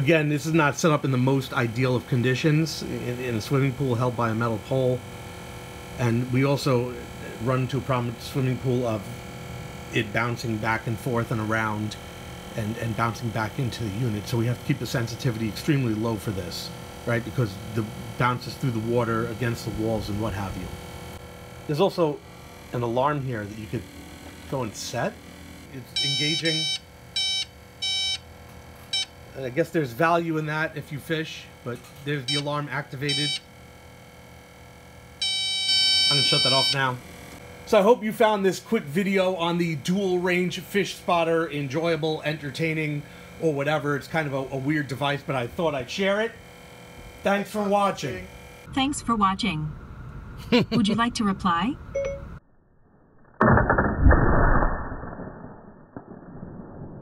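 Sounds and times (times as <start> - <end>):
high-pitched electronic alarm beeps: 25.8 - 28.2, 32.3 - 33.5, 35.2 - 37.0, 50.9 - 52.4.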